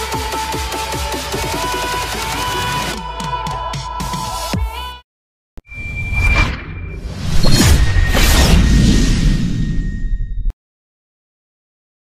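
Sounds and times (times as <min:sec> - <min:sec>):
whoosh: 0:05.6 - 0:10.5.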